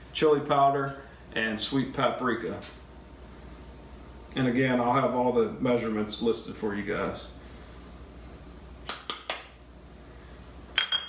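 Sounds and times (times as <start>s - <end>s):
ceramic ramekins clinking: 10.8s - 11.0s.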